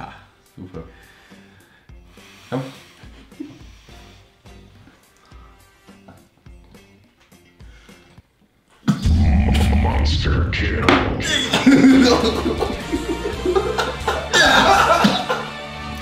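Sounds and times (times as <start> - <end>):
quiet background music: 0.0 - 16.0.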